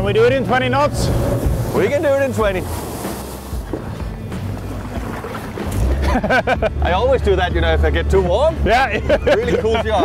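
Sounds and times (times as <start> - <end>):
men talking: 0.0 - 3.6, 6.0 - 10.0
wind buffeting microphone: 0.0 - 6.0
motorboat engine hum: 0.0 - 9.3
men laughing: 5.8 - 7.1, 8.7 - 10.0.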